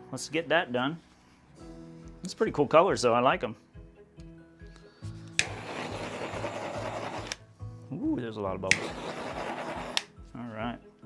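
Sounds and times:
background music with beat: 0:03.4 - 0:08.0
torch clicking on: 0:05.3 - 0:07.4, 0:08.7 - 0:10.1
torch flame hissing: 0:05.4 - 0:07.4, 0:08.7 - 0:10.1.

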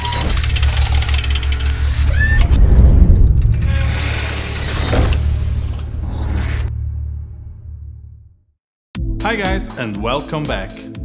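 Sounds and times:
deep bass drone: 0:00.0 - 0:08.5.

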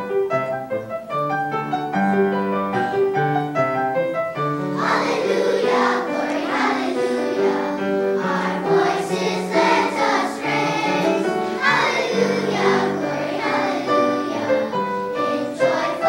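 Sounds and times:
piano accompaniment: 0:00.0 - 0:16.0
children's choir singing: 0:04.4 - 0:16.0.

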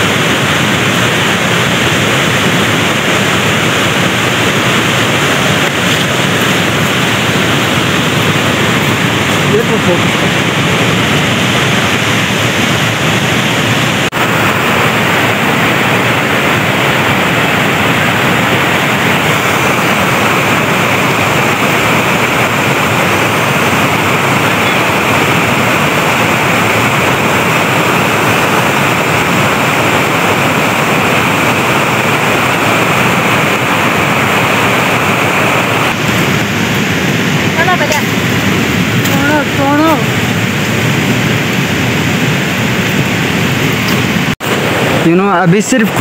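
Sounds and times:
fast-flowing river rushing: 0:00.0 - 0:46.0.

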